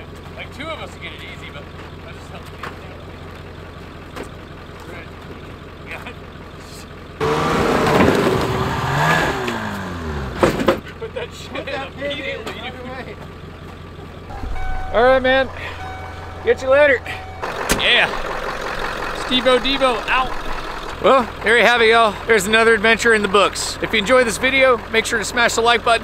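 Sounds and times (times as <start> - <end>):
snowmobile engine revving: 7.2 - 10.6, 15.1 - 26.0.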